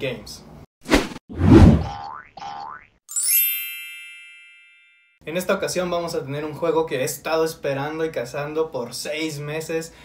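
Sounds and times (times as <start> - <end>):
low whoosh: 1.0 - 1.9
bright chime: 3.1 - 5.2.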